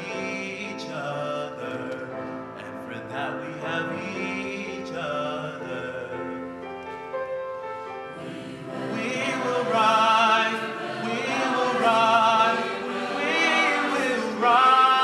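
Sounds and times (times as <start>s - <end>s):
choir singing: 8.1s - 15.0s.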